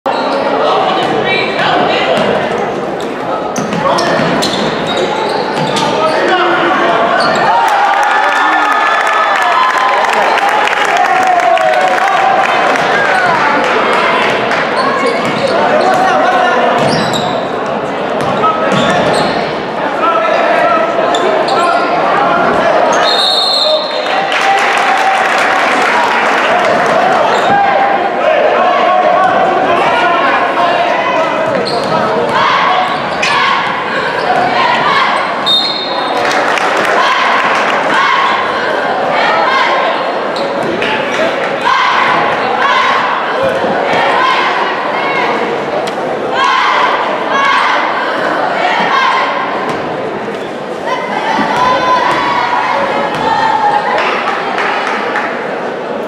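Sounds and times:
spectators' voices and shouts: 0:00.0 - 0:56.0
shrill whistle blasts: 0:23.0 - 0:24.0, 0:35.4 - 0:36.0.

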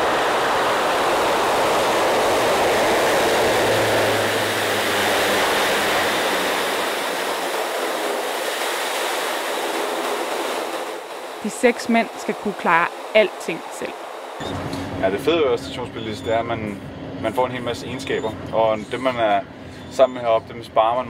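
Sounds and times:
turboprop aircraft engines roaring: 0:00.0 - 0:21.0
low hum: 0:14.4 - 0:21.0.

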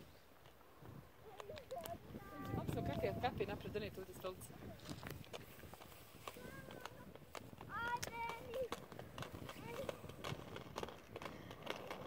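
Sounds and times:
skate wheels rolling on asphalt: 0:00.0 - 0:12.0
children calling: 0:01.2 - 0:03.4, 0:06.2 - 0:08.9.

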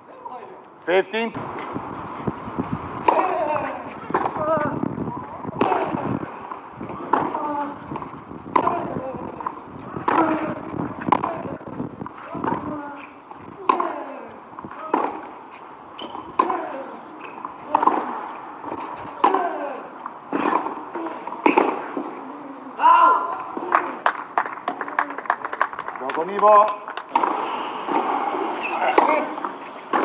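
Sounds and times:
racket hitting tennis ball: 0:03.0 - 0:04.7, 0:05.4 - 0:15.3, 0:16.0 - 0:22.2, 0:27.1 - 0:30.0.

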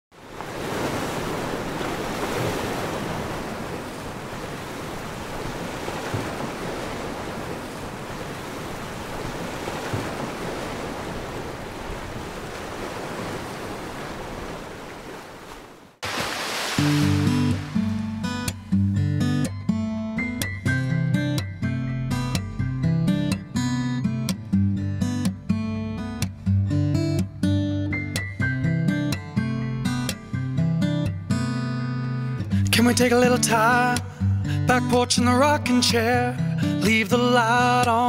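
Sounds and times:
ocean surf breaking: 0:00.2 - 0:18.8
strummed acoustic guitar: 0:16.8 - 0:38.0.

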